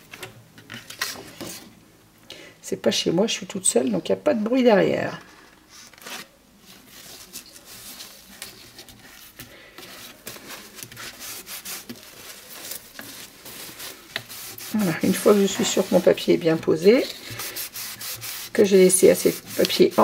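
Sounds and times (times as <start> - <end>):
cloth rubbing paper: 5.7 - 20.0.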